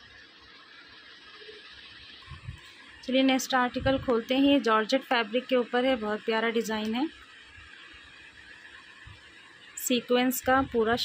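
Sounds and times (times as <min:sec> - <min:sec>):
faint steady hiss: 0:00.0 - 0:11.0
woman speaking: 0:03.0 - 0:07.2, 0:09.8 - 0:11.0.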